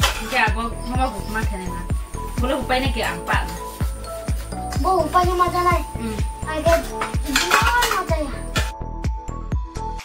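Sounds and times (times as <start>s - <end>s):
plates and cutlery clinking: 0.0s - 0.6s, 6.6s - 8.7s
background music with steady beat: 0.0s - 10.0s.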